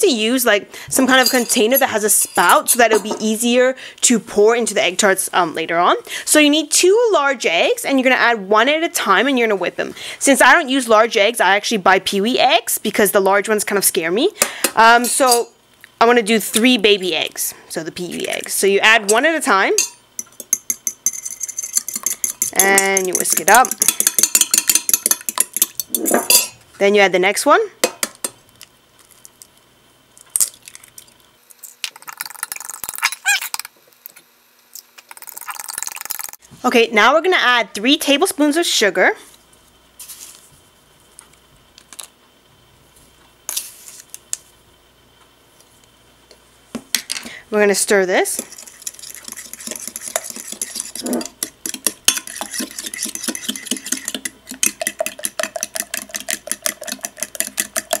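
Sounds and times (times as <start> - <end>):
fork whisking egg in glass: 19.8 - 26.5, 48.4 - 58.0.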